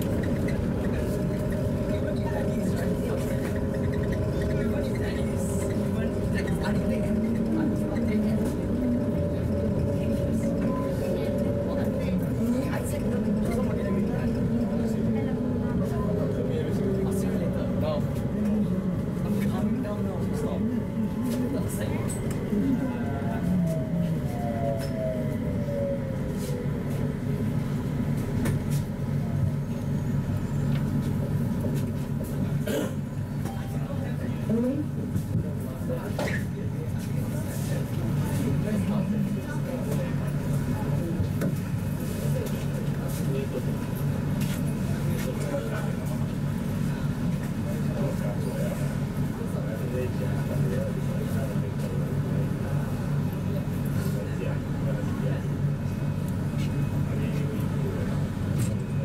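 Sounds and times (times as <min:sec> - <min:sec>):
train rumbling on guideway: 0:00.0 - 0:59.0.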